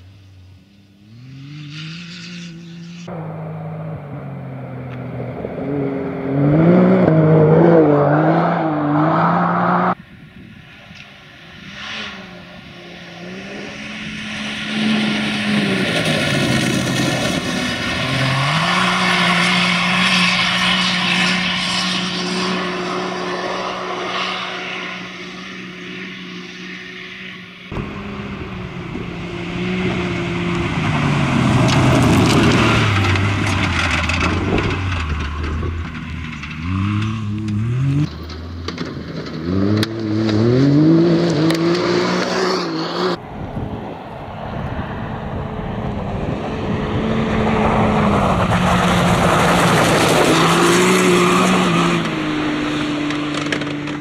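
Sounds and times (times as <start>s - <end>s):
racing car engine revving: 0.8s - 10.0s, 11.6s - 43.2s, 45.0s - 54.0s.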